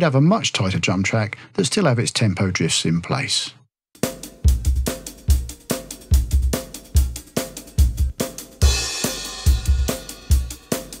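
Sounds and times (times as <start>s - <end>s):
drum kit playing beat: 4.0s - 11.0s
cymbal crash: 8.6s - 11.0s.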